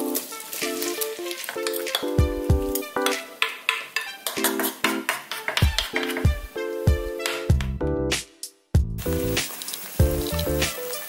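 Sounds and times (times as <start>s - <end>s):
wooden spatula in pan: 0.0s - 6.4s
potato sizzling in frying pan: 0.0s - 7.5s, 9.0s - 11.0s
music with plucked notes: 0.0s - 8.2s, 10.0s - 11.0s
deep bass notes: 7.5s - 8.2s, 8.8s - 9.4s.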